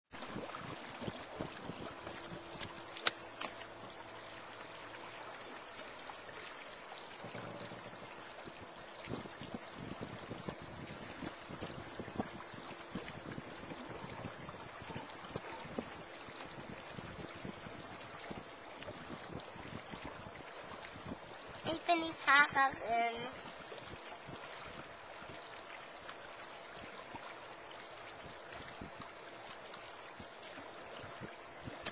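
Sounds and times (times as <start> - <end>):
water rushing against boat hull: 0.1 - 31.9
wind buffeting microphone: 0.2 - 4.5, 7.2 - 25.5, 26.1 - 29.2, 30.2 - 31.9.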